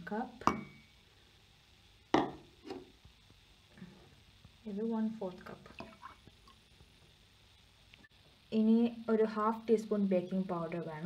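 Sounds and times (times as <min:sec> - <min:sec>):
measuring cup knocking on wood: 0:02.2 - 0:02.8.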